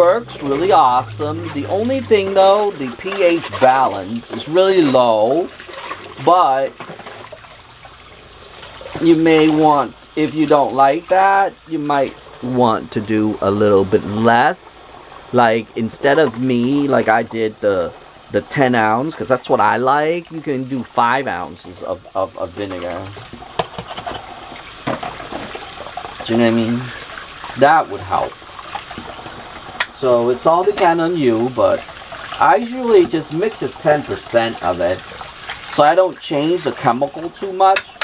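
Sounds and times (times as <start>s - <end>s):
pot being scrubbed: 0.0s - 10.9s, 21.6s - 38.0s
faucet water splashing on plate: 0.0s - 12.4s, 20.4s - 38.0s
tap running into sink: 23.0s - 26.6s.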